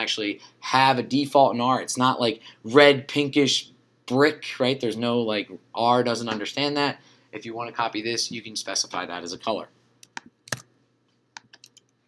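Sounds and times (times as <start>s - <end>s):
keyboard keys clicking: 10.0s - 10.7s.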